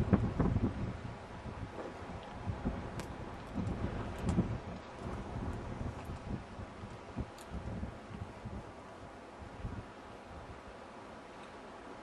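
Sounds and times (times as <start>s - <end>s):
wind buffeting microphone: 0.0s - 10.7s.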